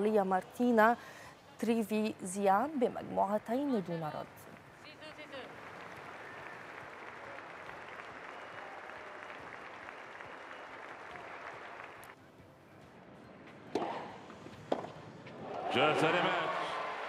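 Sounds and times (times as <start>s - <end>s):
crowd applauding: 4.3s - 12.2s.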